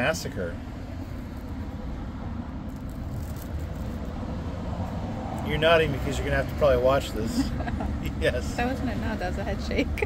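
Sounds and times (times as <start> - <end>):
cars going by: 0.0 - 10.0.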